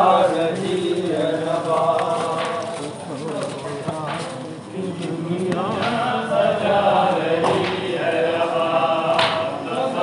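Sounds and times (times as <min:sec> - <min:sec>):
voices chanting a lament: 0:00.0 - 0:10.0.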